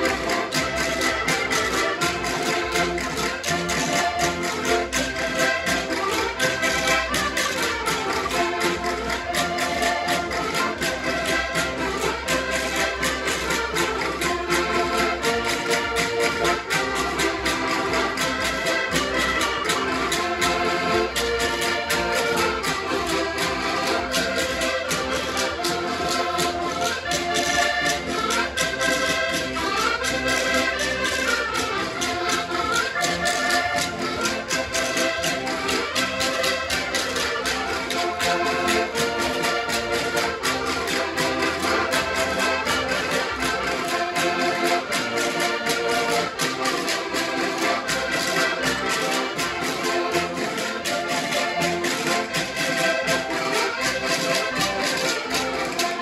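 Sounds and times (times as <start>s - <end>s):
button accordions playing folk tune: 0.0s - 56.0s
strummed small guitar: 0.0s - 56.0s.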